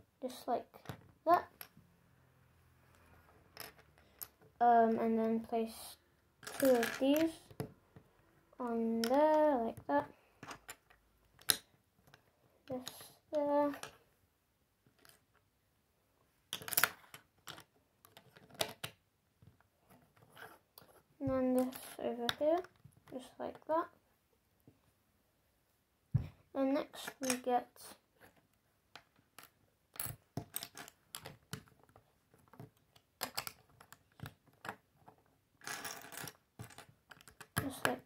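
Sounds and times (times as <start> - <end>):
plastic bricks clicking and tapping: 6.4 - 7.8, 8.9 - 14.0, 16.5 - 23.7, 28.2 - 38.0.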